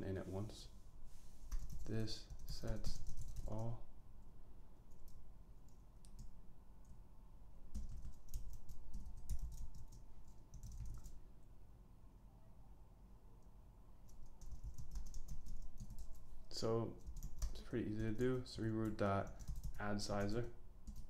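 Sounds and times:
typing on computer keyboard: 1.5s - 3.7s, 7.7s - 11.2s, 14.1s - 16.2s, 17.0s - 18.2s, 18.8s - 21.0s.

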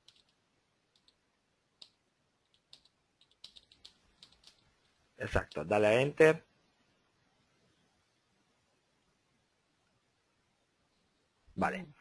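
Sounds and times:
typing on computer keyboard: 0.0s - 1.2s, 1.8s - 5.7s.

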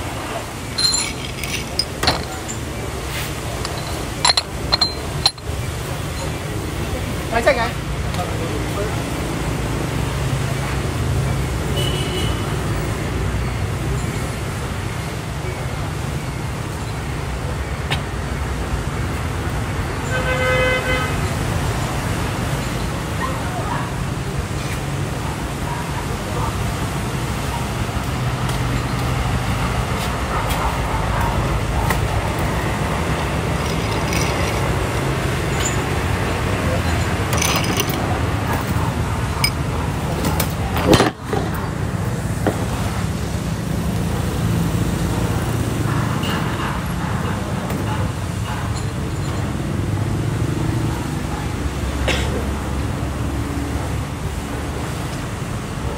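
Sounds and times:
street traffic rumble: 0.0s - 55.9s.

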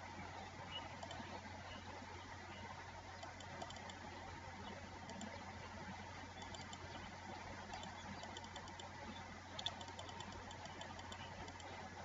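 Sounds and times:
low electrical hum: 0.0s - 12.0s
keyboard and mouse clicks: 3.2s - 4.0s, 6.4s - 6.8s, 7.7s - 8.9s, 9.6s - 11.7s.

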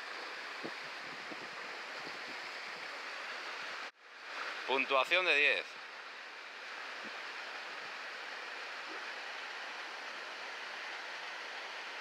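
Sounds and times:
stream water rushing over rock: 0.0s - 12.0s.

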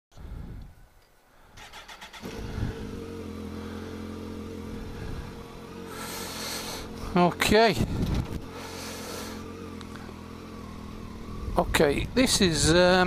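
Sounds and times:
motorcycle starter cranking: 1.6s - 3.5s, 5.9s - 11.8s
motorcycle engine revving and idling: 1.6s - 13.0s.

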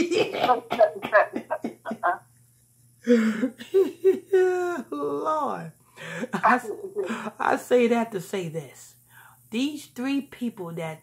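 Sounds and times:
man coughing: 0.0s - 2.2s, 3.1s - 4.4s
man laughing hard: 3.1s - 4.9s.

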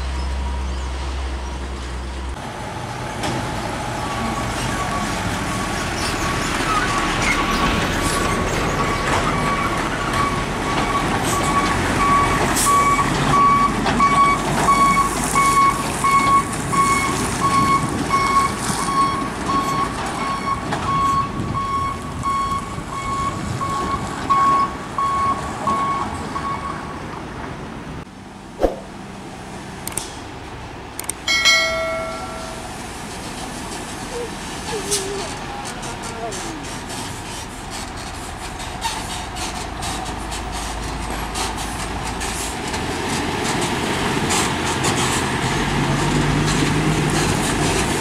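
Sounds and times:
truck diesel engine labouring: 0.0s - 28.4s, 29.0s - 48.0s.

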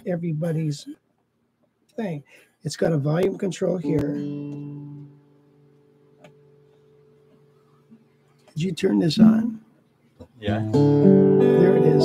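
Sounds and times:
guitar strings ringing: 3.7s - 7.4s, 8.9s - 9.6s, 10.5s - 12.0s.

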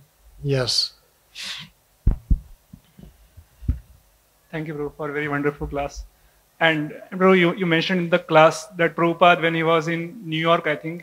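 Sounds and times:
microphone handling knocks: 2.0s - 4.0s.

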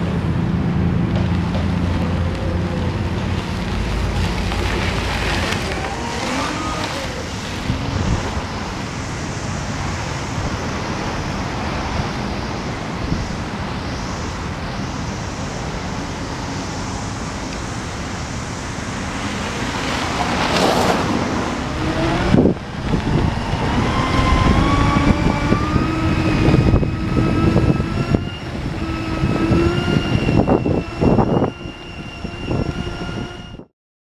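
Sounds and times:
rushing rumbling wind noise: 0.0s - 33.7s
motor drive whining: 1.0s - 18.0s, 21.1s - 33.7s.

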